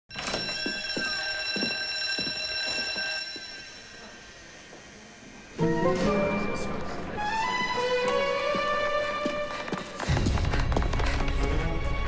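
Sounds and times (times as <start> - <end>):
high ringing alarm tone: 0.1 - 4.9.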